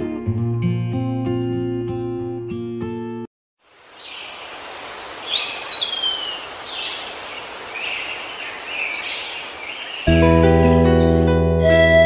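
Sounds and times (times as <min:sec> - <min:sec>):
outdoor background noise: 0:03.6 - 0:10.1
birds calling: 0:03.9 - 0:10.1.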